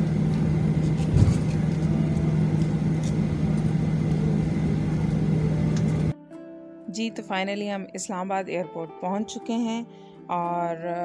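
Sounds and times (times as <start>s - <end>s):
aircraft bump: 0.0s - 6.1s
jet engine hum: 0.0s - 6.2s.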